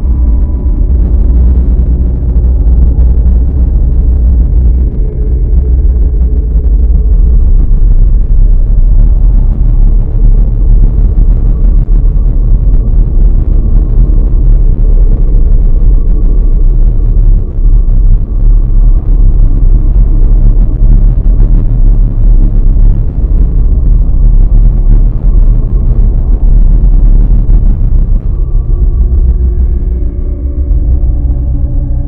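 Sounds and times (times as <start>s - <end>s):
dark ambient drone: 0.0s - 32.0s.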